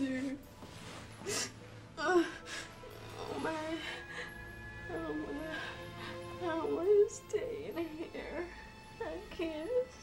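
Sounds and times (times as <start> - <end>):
quiet music: 0.0 - 10.0
woman sobbing: 1.2 - 6.4.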